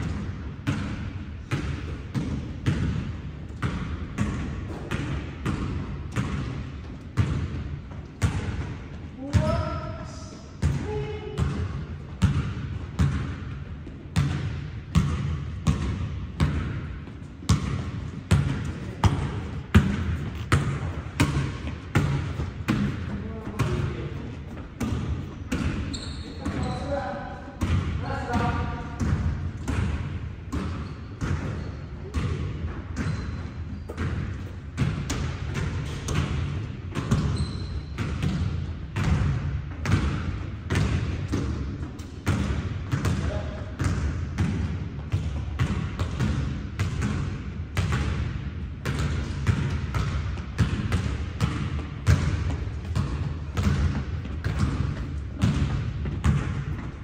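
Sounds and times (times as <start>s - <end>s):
basketballs bouncing on hardwood: 0.0s - 57.0s.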